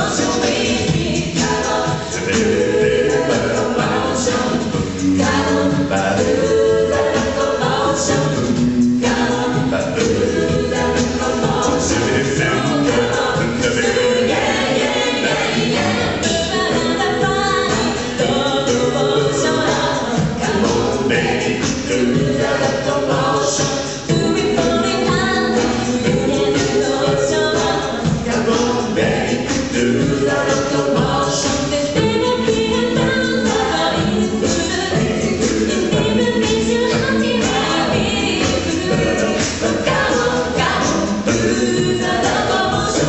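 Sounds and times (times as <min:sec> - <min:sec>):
a cappella group singing in harmony: 0:00.0 - 0:43.0
steady repeating beat: 0:00.0 - 0:43.0.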